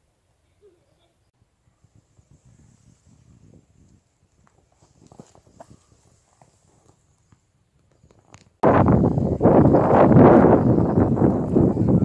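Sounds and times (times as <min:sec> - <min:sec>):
wind buffeting microphone: 0:01.4 - 0:12.0.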